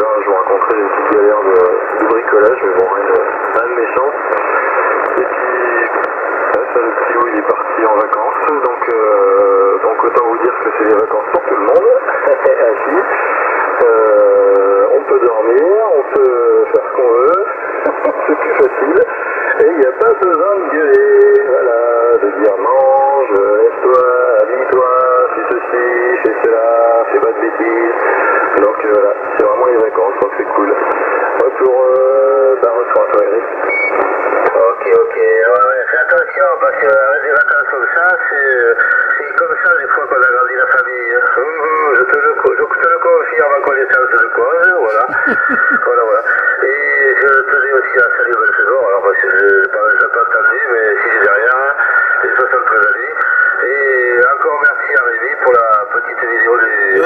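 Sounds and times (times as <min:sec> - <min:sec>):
radio background hiss: 0:00.0 - 0:57.0
tinny radio voice: 0:13.8 - 0:19.8, 0:38.5 - 0:48.3, 0:56.4 - 0:57.0.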